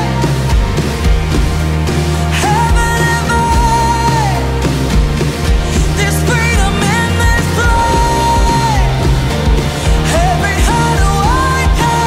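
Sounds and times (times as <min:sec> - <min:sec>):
live band with drums and bass: 0:00.0 - 0:12.0.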